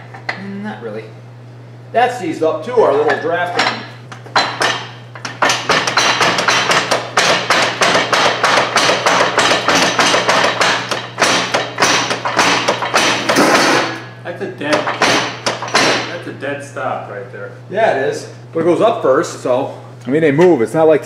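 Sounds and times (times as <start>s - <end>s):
steady low hum: 0.0s - 21.0s
rapid metal knocking: 4.4s - 14.0s, 14.6s - 16.2s.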